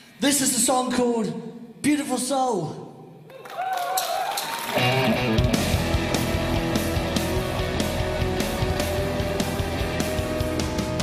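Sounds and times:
rock band playing: 4.8s - 11.0s.

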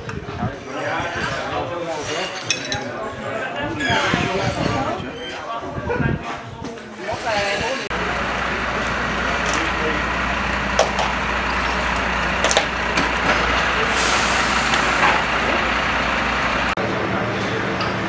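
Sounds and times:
large vehicle engine running: 7.9s - 18.0s.

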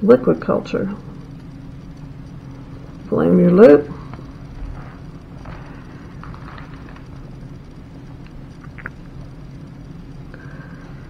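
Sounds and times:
low hum: 0.0s - 11.0s
faint ticks and clicks: 0.1s - 11.0s.

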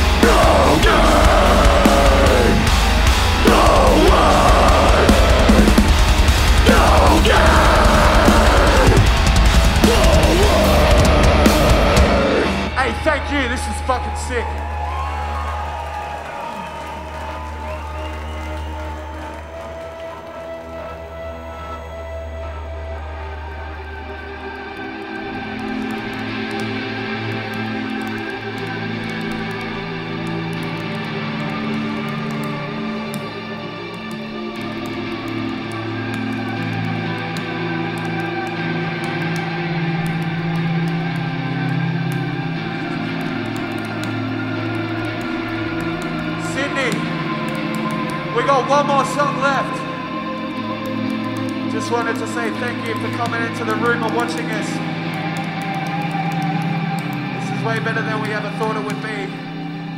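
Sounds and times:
deep bass drone: 0.0s - 16.2s
electric guitar chords with effects: 0.0s - 59.9s.

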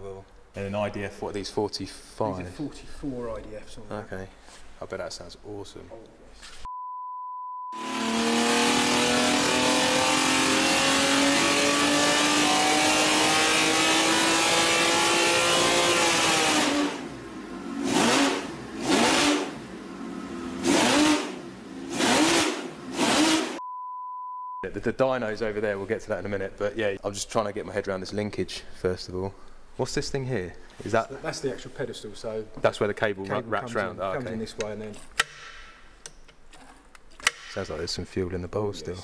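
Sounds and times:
short steady beep: 6.7s - 7.8s, 23.6s - 24.6s
race engine revving: 7.8s - 23.6s.

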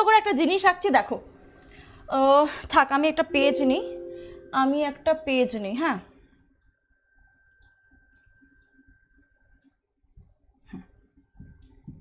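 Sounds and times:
faint steady high tone: 2.9s - 6.0s.

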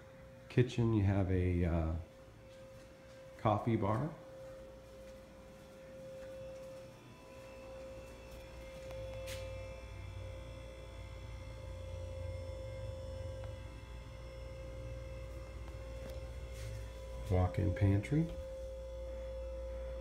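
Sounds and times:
steady electrical hum: 0.0s - 20.0s.

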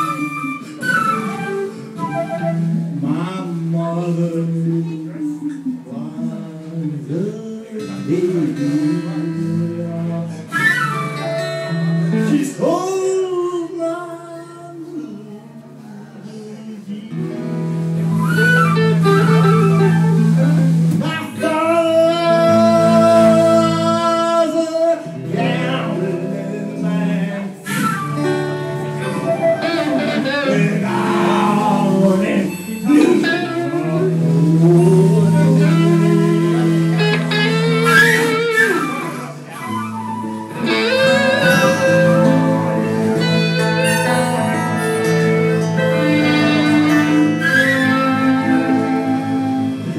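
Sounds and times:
blues band playing: 0.0s - 13.8s, 17.1s - 49.9s.

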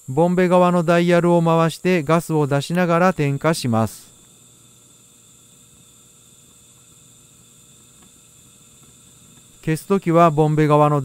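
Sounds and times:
air pump low hum: 0.0s - 11.0s
torch burning hiss: 0.0s - 11.0s.

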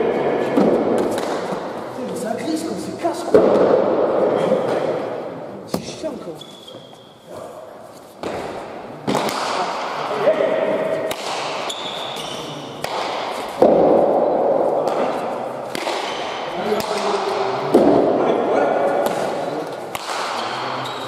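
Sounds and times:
hard ball smacking against walls: 0.4s - 1.7s, 3.3s - 5.0s, 8.2s - 9.8s, 12.8s - 18.2s.

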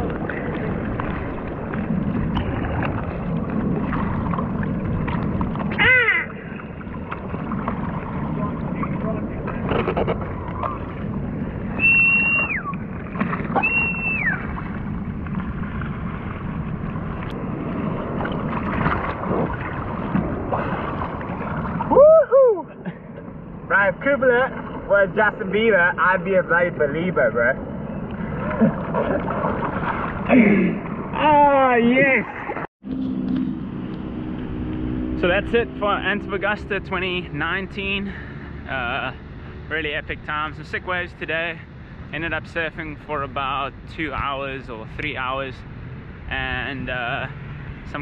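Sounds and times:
seawater lapping: 0.0s - 22.0s, 22.6s - 26.8s, 27.4s - 32.7s, 34.2s - 48.0s
short falling cry: 21.9s - 22.8s.

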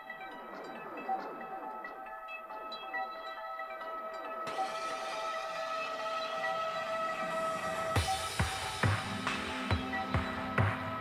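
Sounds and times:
whistle-like synth drone: 0.0s - 11.0s.

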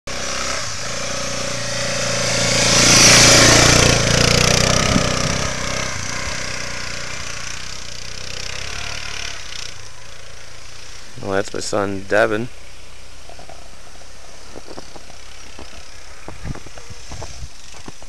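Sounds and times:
atv engine running: 0.1s - 11.2s, 12.7s - 18.0s.

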